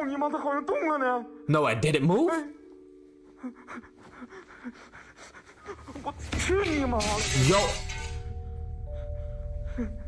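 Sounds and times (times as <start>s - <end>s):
person panting: 3.3s - 6.1s.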